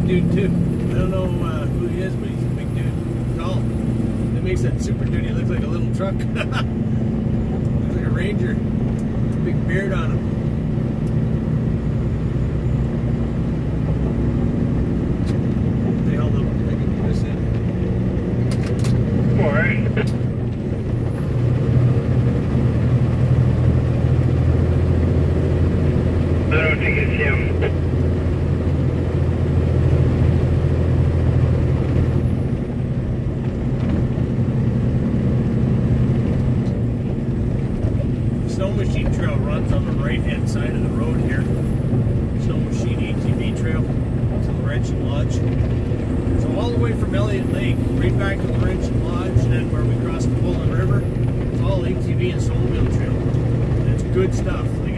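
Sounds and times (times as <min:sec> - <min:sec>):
truck engine and tyre drone: 0:00.0 - 0:54.9.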